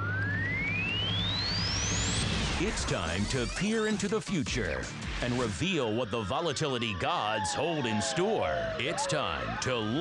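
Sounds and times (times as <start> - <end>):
low drone: 0.0 - 3.6
pure tone sweeping upward: 0.0 - 3.6, 5.9 - 10.0.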